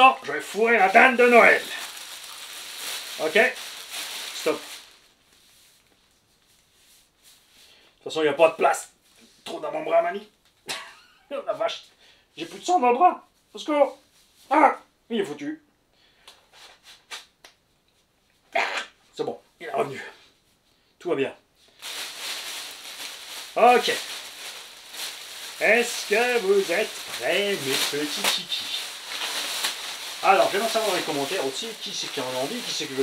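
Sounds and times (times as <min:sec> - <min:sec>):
plastic bag rustling: 0:00.0 - 0:06.6, 0:21.7 - 0:33.0.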